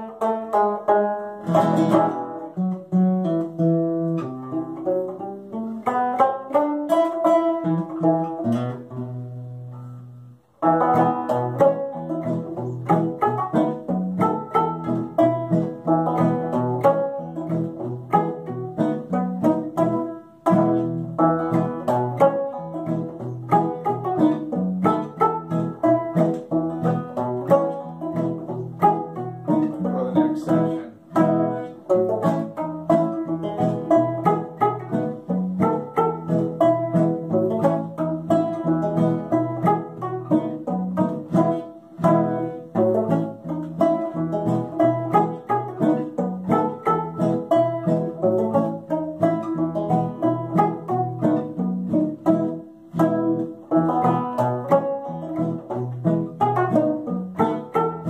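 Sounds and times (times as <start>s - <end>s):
acoustic guitar: 0.0s - 58.0s
banjo: 0.0s - 58.0s.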